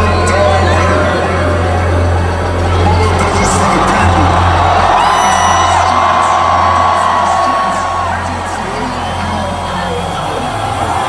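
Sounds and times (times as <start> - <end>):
crowd whooping and cheering: 0.0 - 11.0
electronic dance music: 0.0 - 11.0.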